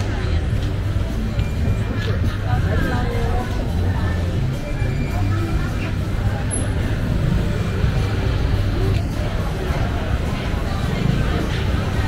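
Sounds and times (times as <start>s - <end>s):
crowd of shoppers chattering: 0.0s - 12.0s.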